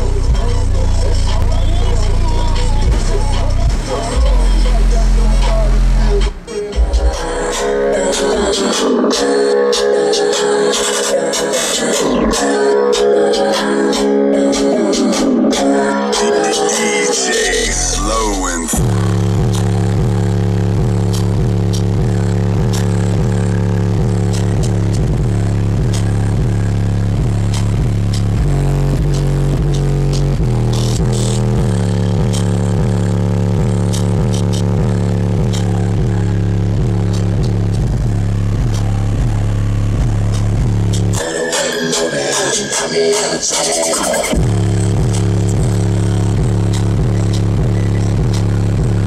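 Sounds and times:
bass-heavy electronic music: 0.0s - 49.0s.

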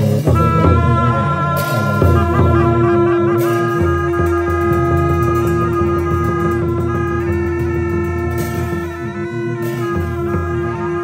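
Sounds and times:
double-reed oboes playing melody: 0.0s - 11.0s.

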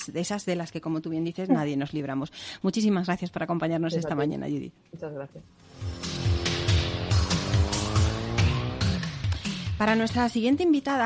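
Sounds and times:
instrumental music with bass and drums: 5.7s - 10.2s.

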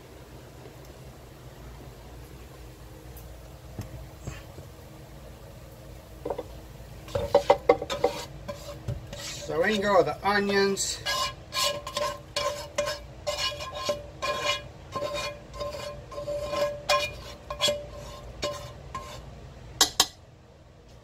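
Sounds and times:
utensil scraping a skillet: 6.2s - 20.1s.

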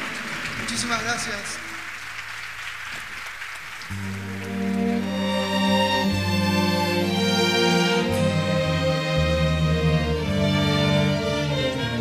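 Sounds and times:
audience applause: 0.0s - 7.3s
low orchestral notes: 3.9s - 12.0s.

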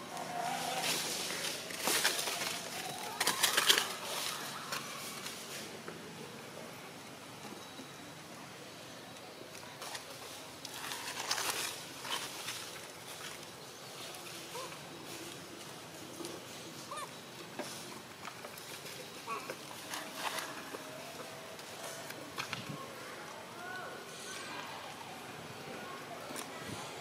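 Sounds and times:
rustling in dry leaves: 0.0s - 5.8s, 9.6s - 27.0s.

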